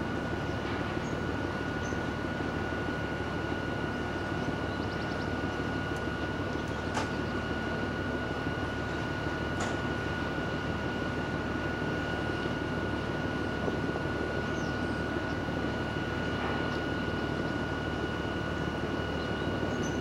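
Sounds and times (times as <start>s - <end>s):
high machinery whine: 0.0s - 20.0s.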